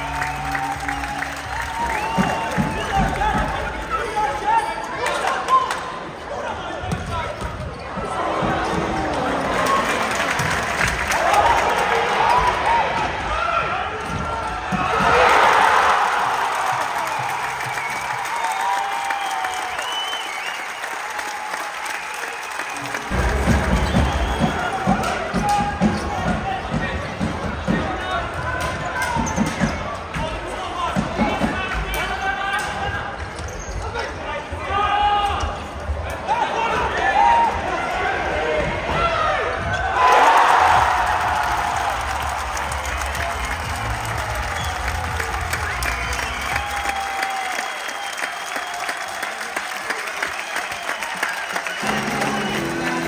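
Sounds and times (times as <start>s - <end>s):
voices in a hall: 0.0s - 16.9s, 21.9s - 53.0s.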